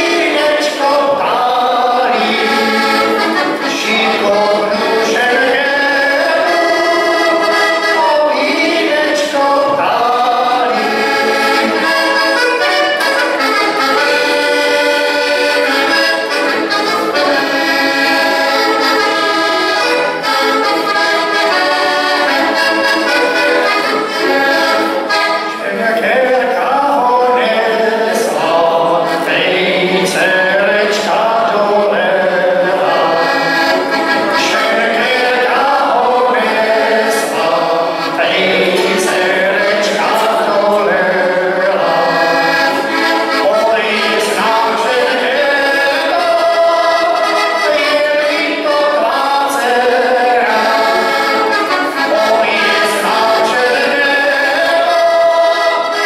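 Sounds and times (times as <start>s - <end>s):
button accordion folk tune: 0.0s - 56.0s.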